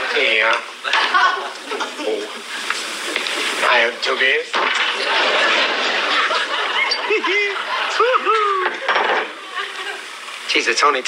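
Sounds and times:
audience laughing: 0:00.0 - 0:03.1, 0:04.7 - 0:10.5.

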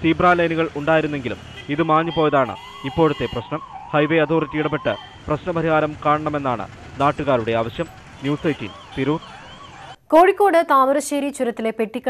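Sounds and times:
road traffic: 0:00.0 - 0:10.0
siren wailing: 0:01.8 - 0:10.0.

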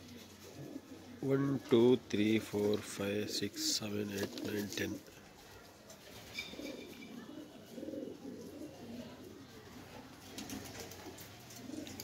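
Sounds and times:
pigeons cooing: 0:00.0 - 0:01.7, 0:03.2 - 0:12.0.

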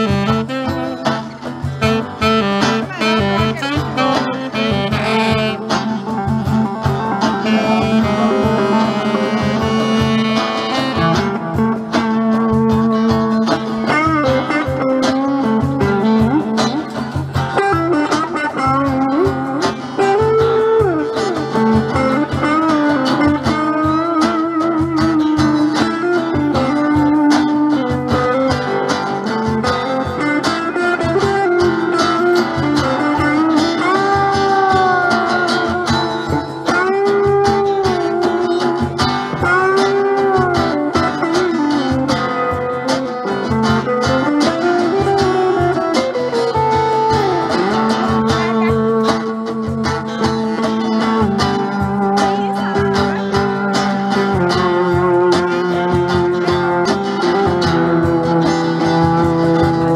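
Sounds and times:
cajon drumming: 0:00.0 - 0:59.9
electric guitar solo with bent notes: 0:00.0 - 0:59.9
rhythm guitar: 0:00.0 - 0:59.9
saxophone holding a note: 0:01.8 - 0:05.9, 0:07.4 - 0:11.5.

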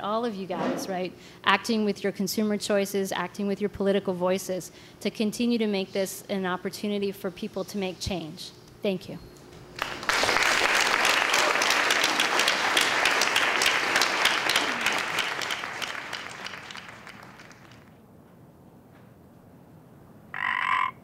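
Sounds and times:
audience applauding: 0:09.8 - 0:18.0.

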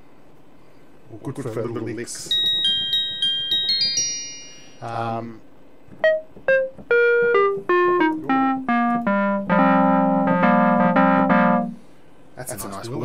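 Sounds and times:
synthesizer notes stepping down: 0:06.0 - 0:11.8
low synthesizer chord: 0:07.7 - 0:11.8.

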